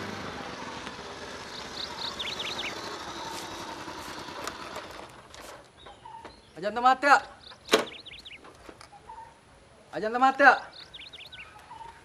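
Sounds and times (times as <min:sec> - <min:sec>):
small motorcycle running: 0:00.0 - 0:05.6
bird chirping: 0:01.3 - 0:04.3, 0:05.8 - 0:09.4, 0:10.6 - 0:12.0.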